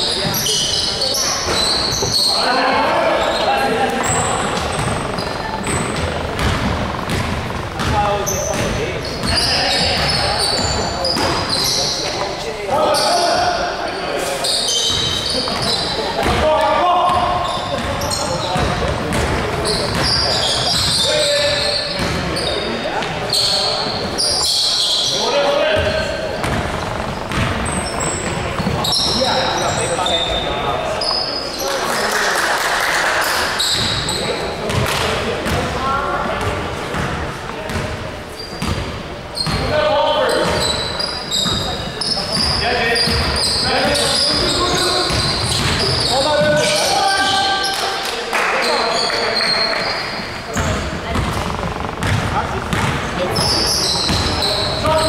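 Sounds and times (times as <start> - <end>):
players calling out: 0.0 - 34.8
basketball bouncing on wooden floor: 3.9 - 10.2, 25.8 - 29.2, 50.6 - 55.0.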